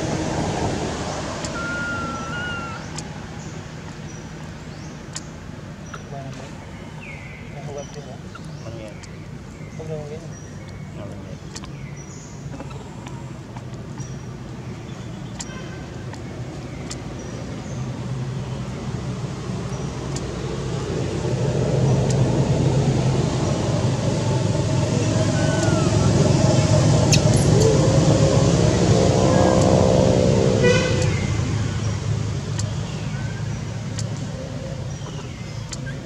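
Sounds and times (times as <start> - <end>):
vehicle engine passing by: 0.0 - 3.8, 17.1 - 36.0.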